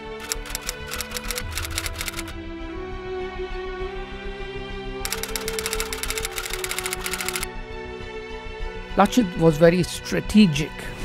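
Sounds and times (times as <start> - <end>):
background music: 0.0 - 11.0
typewriter keys clattering: 0.2 - 2.3, 5.1 - 7.4.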